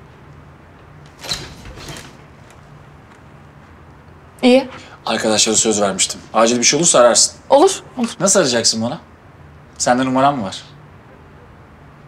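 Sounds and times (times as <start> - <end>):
door scraping open: 1.1 - 2.8.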